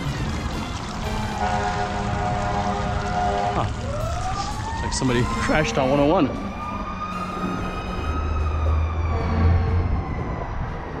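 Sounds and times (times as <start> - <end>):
emergency vehicle siren wailing: 0.0 - 11.0.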